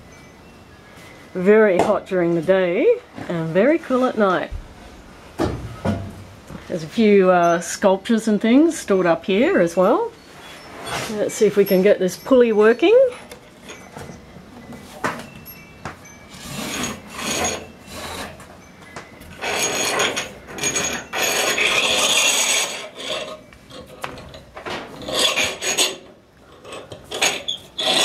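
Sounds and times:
rope rasping through pulley: 0:16.3 - 0:18.6, 0:19.3 - 0:28.0.

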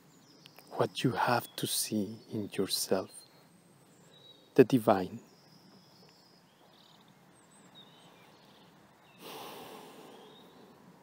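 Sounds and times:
person breathing close to microphone: 0:09.2 - 0:10.6.

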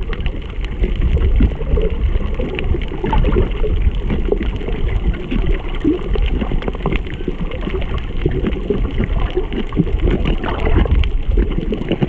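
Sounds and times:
muffled underwater rumble: 0:00.0 - 0:12.0
water gurgles and blips: 0:00.0 - 0:12.0.

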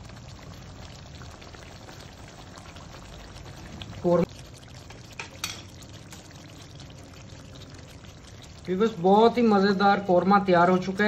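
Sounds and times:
gravy bubbling in a wok: 0:00.0 - 0:11.0.

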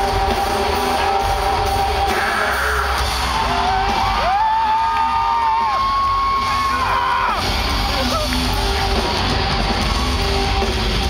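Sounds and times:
crowd cheering and whooping: 0:00.0 - 0:11.0
rock band playing: 0:00.0 - 0:11.0.

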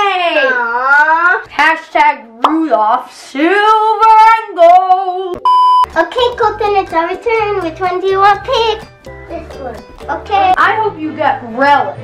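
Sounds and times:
short electronic beep: 0:05.4 - 0:05.9.

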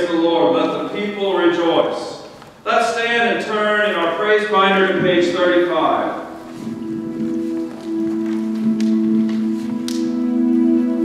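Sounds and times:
held keyboard chord: 0:06.2 - 0:11.0.

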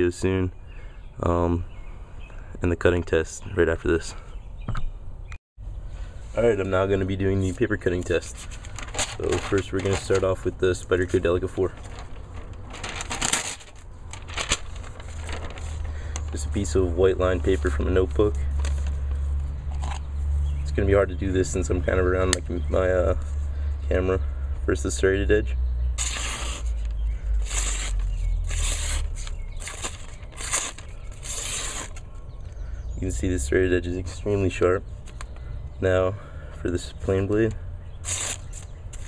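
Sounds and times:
paper rustling and crinkling: 0:07.4 - 0:20.1, 0:26.0 - 0:32.1, 0:38.0 - 0:39.0
low hum: 0:11.8 - 0:16.4
knife slicing paper: 0:26.0 - 0:32.0, 0:38.0 - 0:39.0.

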